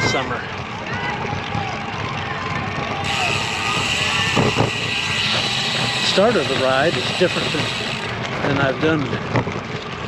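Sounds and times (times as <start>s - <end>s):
tyre and road noise: 0.0s - 10.0s
wind rushing over microphone: 2.4s - 5.3s.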